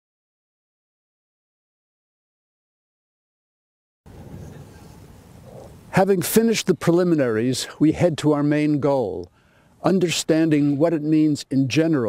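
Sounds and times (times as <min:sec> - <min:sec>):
elephant seals grunting: 0:05.4 - 0:05.9.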